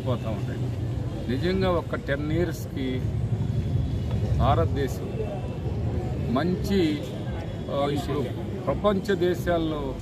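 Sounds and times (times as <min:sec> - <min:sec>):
man speaking: 0:00.0 - 0:03.2, 0:04.2 - 0:05.6, 0:06.2 - 0:10.0.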